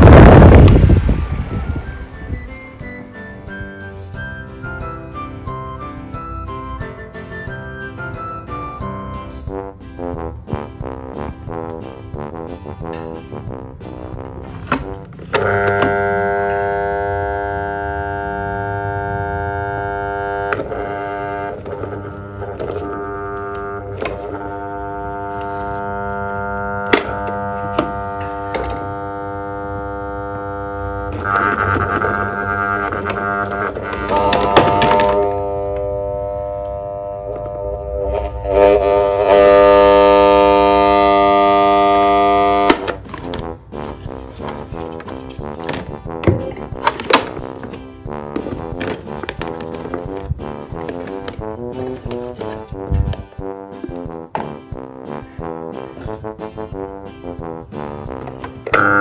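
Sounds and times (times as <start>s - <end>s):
desk fan motor humming: 15.7s - 28.2s.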